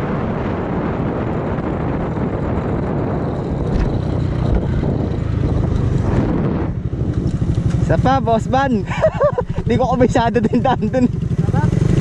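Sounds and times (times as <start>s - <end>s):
motorcycle engine: 0.0s - 12.0s
wind noise: 0.0s - 12.0s.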